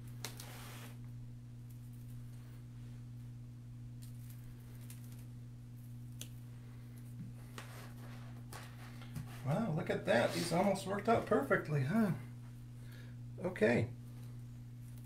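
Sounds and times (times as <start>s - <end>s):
low electrical hum: 0.0s - 15.0s
person speaking: 9.3s - 12.4s.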